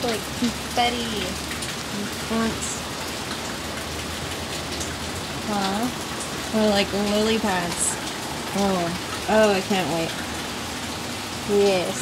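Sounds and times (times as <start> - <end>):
scattered raindrops: 0.0 - 12.0
steady rain falling: 0.0 - 12.0.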